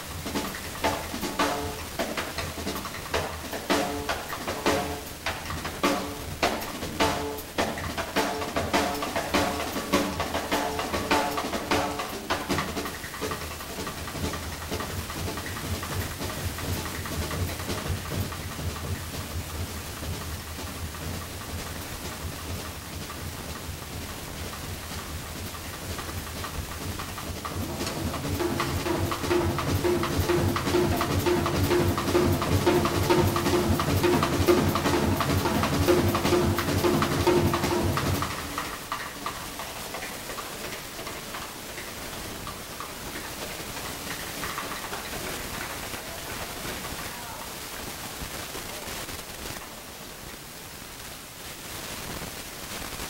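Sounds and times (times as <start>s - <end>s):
jazz drum kit: 0.0s - 49.6s
cymbal wash: 24.6s - 39.6s.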